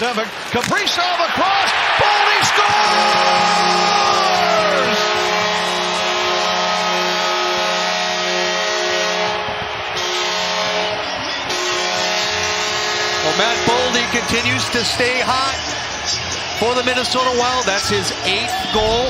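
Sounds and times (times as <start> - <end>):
crowd cheering: 0.0 - 19.0
goal horn blasts: 2.7 - 15.3.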